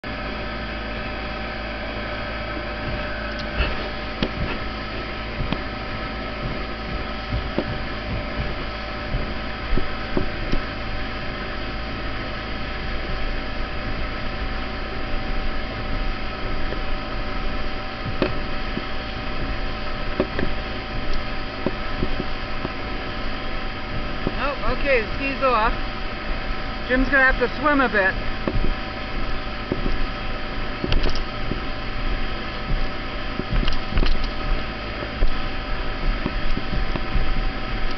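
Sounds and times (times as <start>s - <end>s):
boat engine humming: 0.0s - 37.9s.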